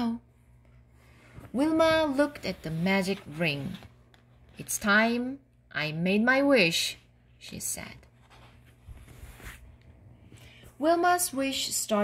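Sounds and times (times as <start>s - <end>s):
low steady hum: 0.0s - 12.0s
paper book rustling: 1.3s - 4.7s, 8.1s - 9.9s.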